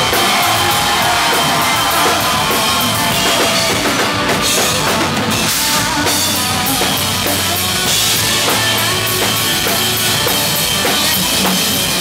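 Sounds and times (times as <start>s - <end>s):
drum kit: 0.0s - 12.0s
live country band playing: 0.0s - 12.0s.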